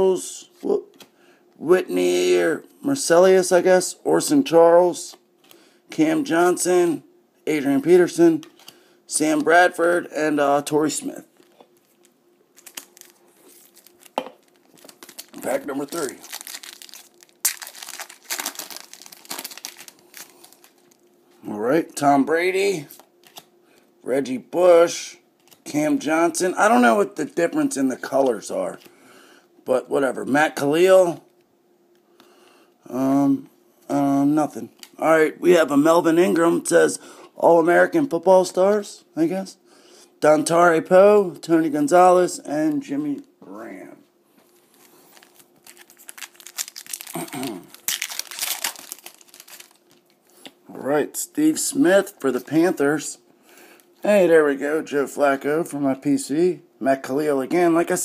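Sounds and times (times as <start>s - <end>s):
wrapper tearing and crinkling: 11.4s - 21.0s, 44.5s - 50.4s.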